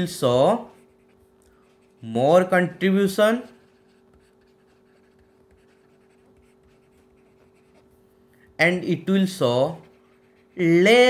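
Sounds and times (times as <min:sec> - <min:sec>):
faint steady hum: 0:00.0 - 0:11.0
stylus scratching on tablet: 0:00.0 - 0:11.0.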